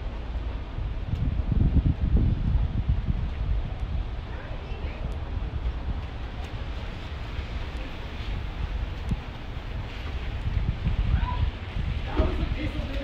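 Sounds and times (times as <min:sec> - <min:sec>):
outdoor background noise: 0:00.0 - 0:13.0
wind buffeting microphone: 0:00.0 - 0:13.0.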